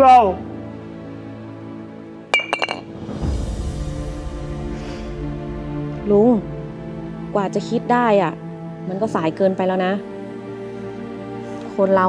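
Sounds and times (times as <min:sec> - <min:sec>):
background music: 0:00.0 - 0:12.0
glass bottle clinking: 0:02.3 - 0:02.9.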